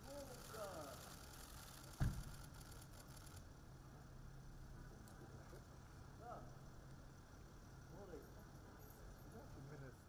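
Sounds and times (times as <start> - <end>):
car door slamming: 2.0 - 2.3.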